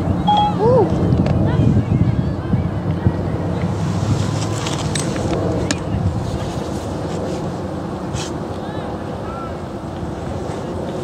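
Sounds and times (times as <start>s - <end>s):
faint distant voices: 0.0s - 11.0s
wind buffeting microphone: 0.0s - 11.0s.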